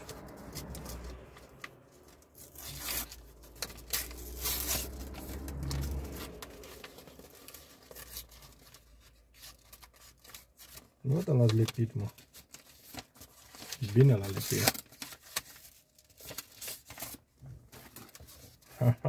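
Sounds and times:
paper crinkling: 0:00.0 - 0:19.0
paper envelope tearing: 0:00.0 - 0:19.0.

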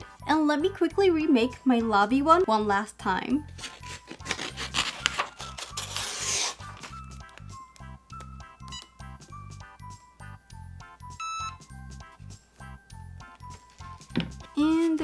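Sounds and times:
background music with steady beat: 0:00.0 - 0:15.0
paper rustling: 0:03.5 - 0:07.1
scissors cutting paper: 0:03.6 - 0:07.0.

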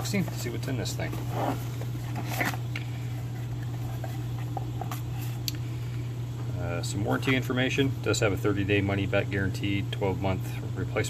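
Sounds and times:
steady low hum: 0:00.0 - 0:11.0
cardboard box scraping: 0:01.0 - 0:02.6.

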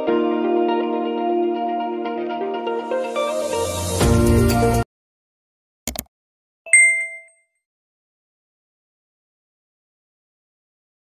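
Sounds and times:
bright bell-like ding: 0:06.7 - 0:07.4.

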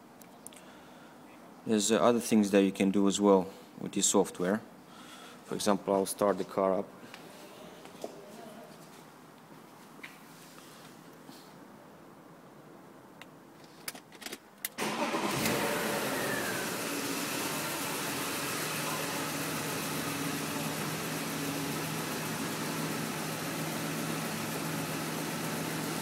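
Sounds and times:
car engine starting and idling: 0:14.7 - 0:26.0.

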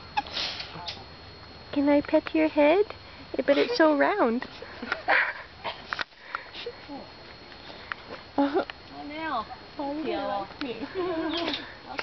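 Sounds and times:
woman laughing breathily: 0:04.6 - 0:06.9, 0:10.8 - 0:11.9.

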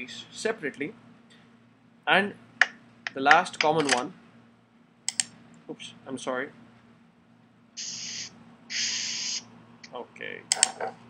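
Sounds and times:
short hissing bursts: 0:07.8 - 0:09.5.

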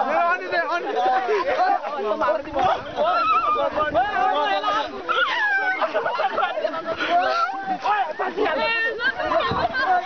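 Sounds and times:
people laughing: 0:00.0 - 0:10.0
people shouting and whooping: 0:00.0 - 0:10.0
high sliding cries: 0:04.6 - 0:06.1.

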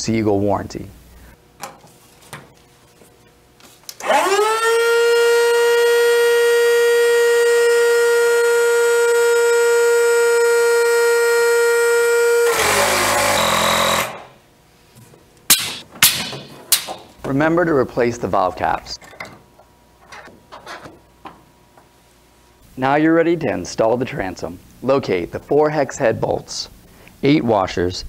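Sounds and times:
electric pump whining: 0:03.9 - 0:14.4.

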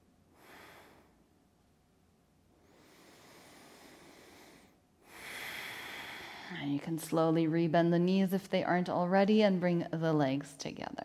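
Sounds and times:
woman breathing slowly: 0:00.2 - 0:01.5, 0:02.5 - 0:06.8.

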